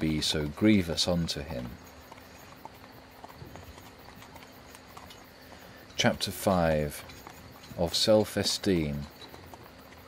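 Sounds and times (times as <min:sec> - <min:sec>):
person reading aloud: 0:00.0 - 0:01.8, 0:06.0 - 0:07.1, 0:07.8 - 0:09.2
horse hooves clip-clopping: 0:00.0 - 0:10.0.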